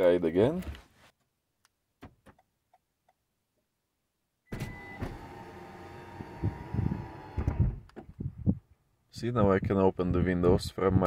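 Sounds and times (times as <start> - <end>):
electric window motors whirring: 4.5 - 7.9.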